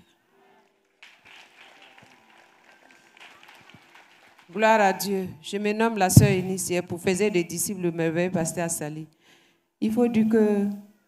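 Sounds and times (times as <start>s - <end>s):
microphone knocks: 6.1s - 7.2s.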